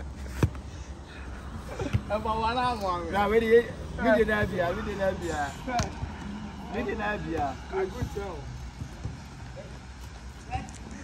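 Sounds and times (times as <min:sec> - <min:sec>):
outdoor background noise: 0:00.0 - 0:11.0
football dribbled on turf: 0:06.8 - 0:09.4.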